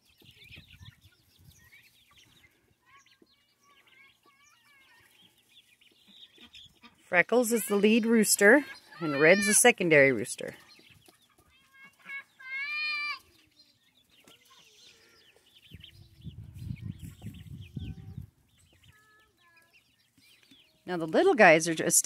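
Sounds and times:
chickens clucking: 0:00.0 - 0:22.0.

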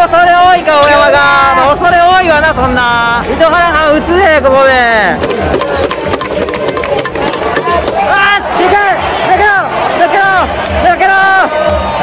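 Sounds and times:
crowd clapping in rhythm: 0:05.6 - 0:12.0.

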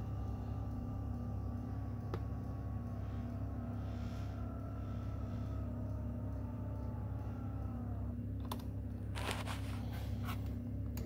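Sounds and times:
seat motor whine: 0:00.0 - 0:11.0
steady low hum: 0:00.0 - 0:11.0.

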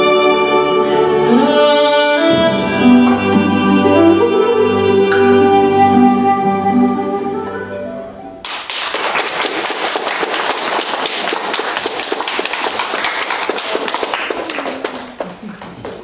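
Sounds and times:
audience applause: 0:08.4 - 0:16.0.

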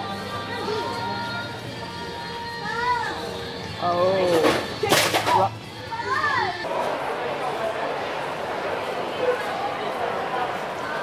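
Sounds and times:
crowd murmur in large hall: 0:00.0 - 0:11.0.

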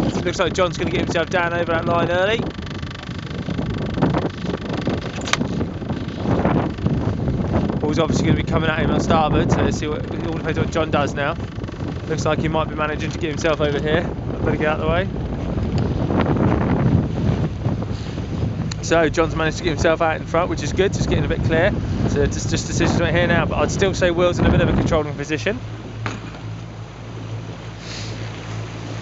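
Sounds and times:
choppy water around boat: 0:00.0 - 0:29.0
outboard engine humming: 0:00.0 - 0:29.0
wind buffeting microphone: 0:00.0 - 0:29.0.

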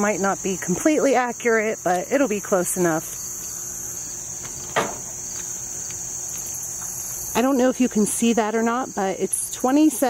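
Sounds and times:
high-pitched insect chorus: 0:00.0 - 0:10.0
watermelon thumping onto scale: 0:04.7 - 0:05.1.

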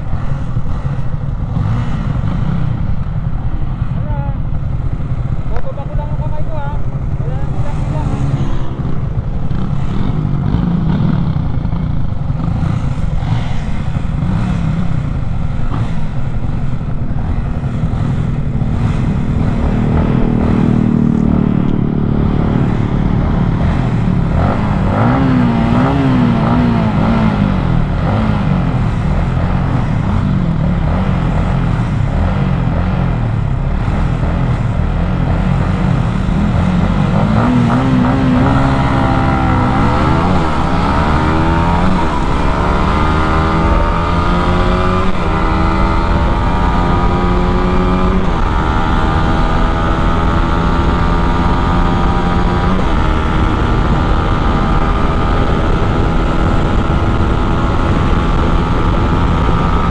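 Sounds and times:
motorcycle engine revving: 0:00.0 - 0:59.9
wind rush: 0:06.8 - 0:32.3, 0:35.8 - 0:59.9.

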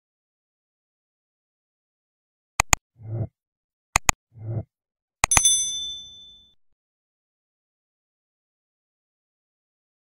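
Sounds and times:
notification bell ding: 0:05.3 - 0:06.6.

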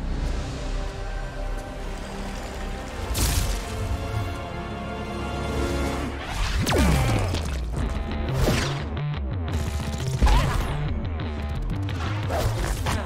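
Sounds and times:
action film score: 0:00.0 - 0:13.0.

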